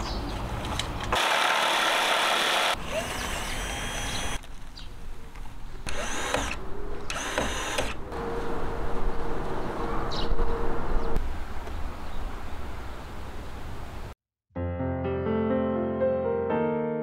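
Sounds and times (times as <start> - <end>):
power drill running: 1.1 - 4.4, 5.8 - 8.0.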